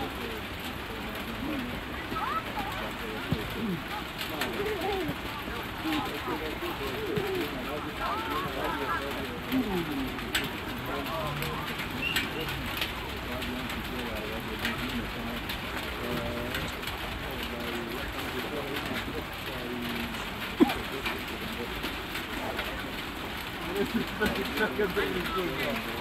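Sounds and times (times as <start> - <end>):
distant voices: 0.0 - 26.0.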